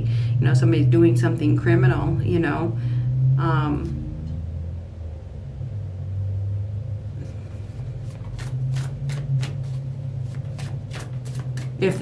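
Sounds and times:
low rumble: 0.4s - 8.8s
cards being shuffled: 7.6s - 12.0s.

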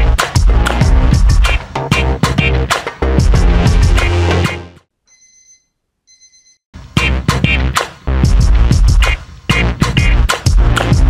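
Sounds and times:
background music with a beat: 0.0s - 4.8s, 6.8s - 11.0s
electronic ringing alarm tone: 5.1s - 6.6s.

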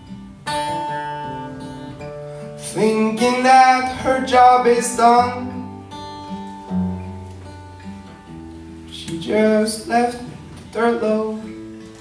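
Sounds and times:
acoustic guitar chord strummed: 0.0s - 12.0s.

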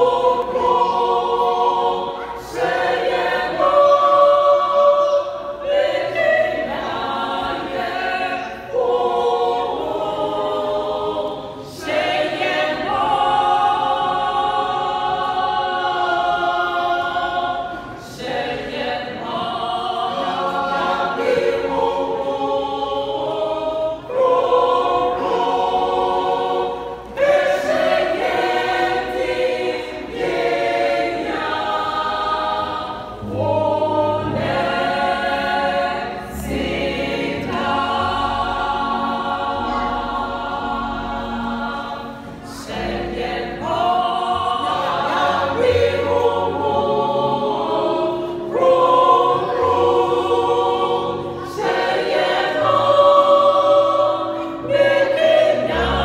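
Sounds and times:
choir singing a cappella: 0.0s - 56.0s.

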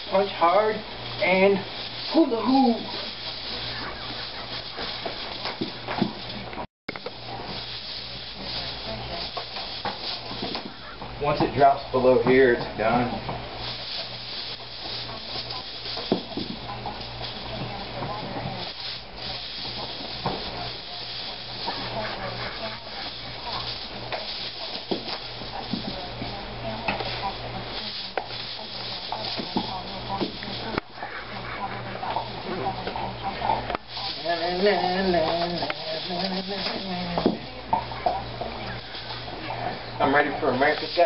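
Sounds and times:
hula hoop rubbing and scraping: 0.0s - 41.0s.

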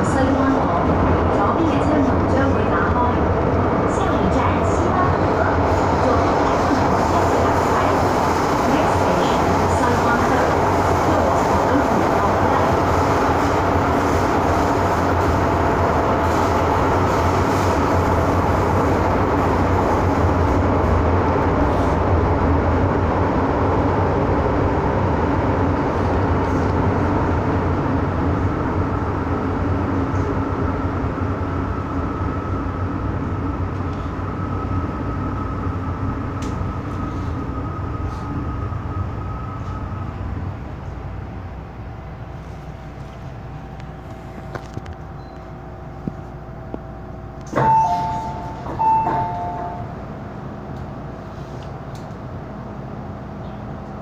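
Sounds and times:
train running rumble: 0.0s - 54.0s.

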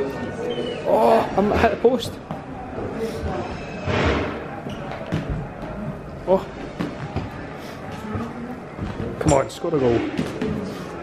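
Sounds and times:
echoing room noise: 0.0s - 11.0s.

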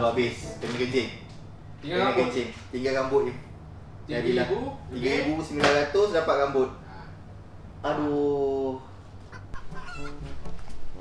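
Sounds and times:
chickens clucking: 9.3s - 10.6s.

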